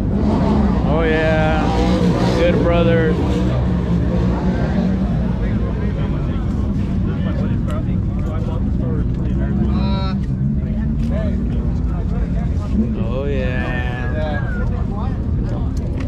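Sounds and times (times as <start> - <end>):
car engines idling: 0.0 - 16.0
crowd chatter: 0.0 - 16.0.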